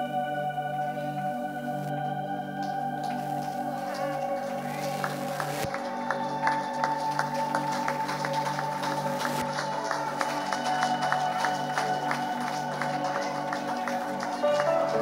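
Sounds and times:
held keyboard chords: 0.0s - 15.0s.

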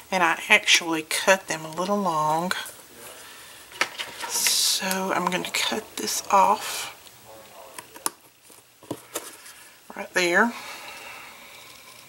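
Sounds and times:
person speaking: 4.1s - 8.2s.

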